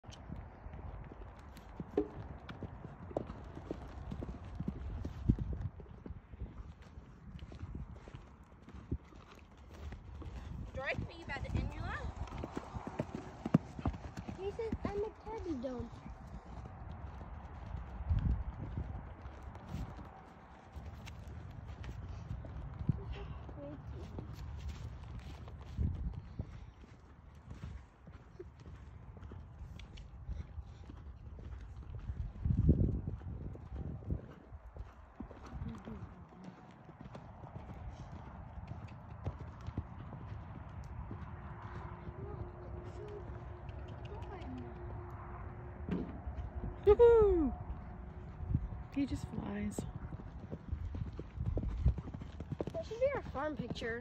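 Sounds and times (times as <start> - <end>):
pony hoofbeats on dirt: 0.0 - 54.0.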